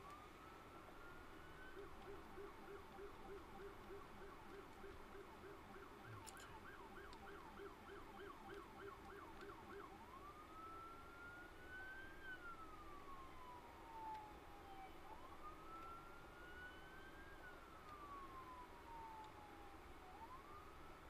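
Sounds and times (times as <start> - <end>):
faint emergency siren: 0.0 - 21.0.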